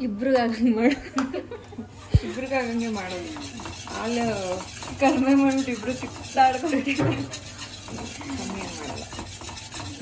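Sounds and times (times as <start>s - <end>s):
wire whisk scraping metal pan: 2.2s - 10.0s.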